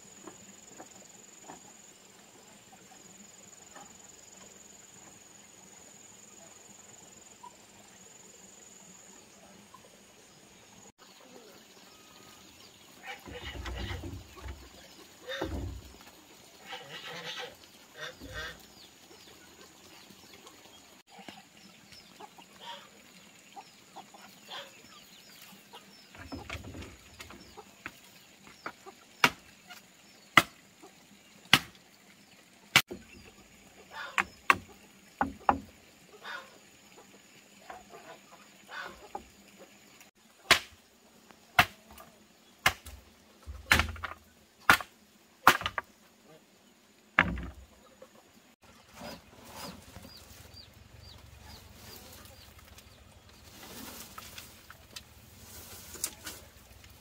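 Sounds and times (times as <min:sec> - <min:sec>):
digging tool chopping hard earth: 0:41.6 - 0:41.8, 0:42.6 - 0:43.0, 0:43.6 - 0:44.0
scraping and handling noises: 0:51.6 - 0:56.9.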